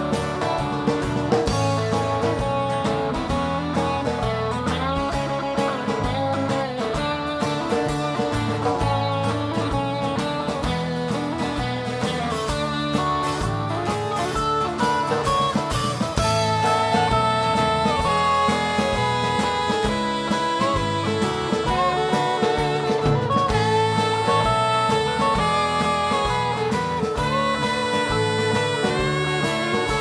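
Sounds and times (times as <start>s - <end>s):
drums and bass beat: 0.0s - 30.0s
lead guitar bending notes: 0.0s - 30.0s.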